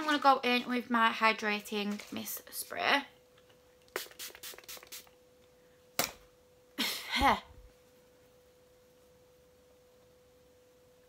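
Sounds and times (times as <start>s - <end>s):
faint steady pure tone: 5.2s - 11.0s.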